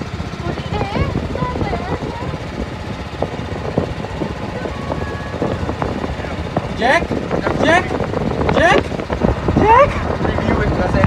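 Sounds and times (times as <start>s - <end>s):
motorboat engine rumbling: 0.0s - 11.0s
wind buffeting microphone: 0.0s - 11.0s
faint voices: 0.2s - 11.0s.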